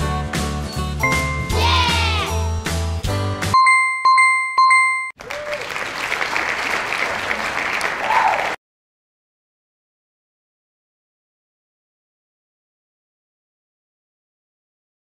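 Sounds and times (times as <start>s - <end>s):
cheerful game music: 0.0s - 5.1s
recorded applause: 5.2s - 8.6s.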